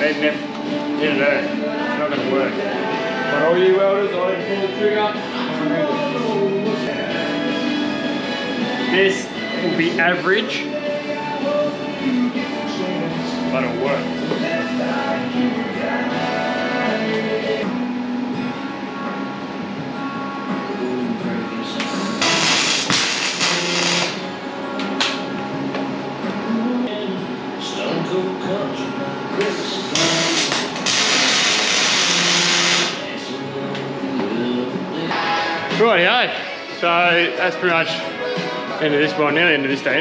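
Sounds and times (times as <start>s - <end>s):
background music: 0.0s - 40.0s
welding arc hissing and crackling: 21.8s - 24.2s, 29.4s - 33.1s.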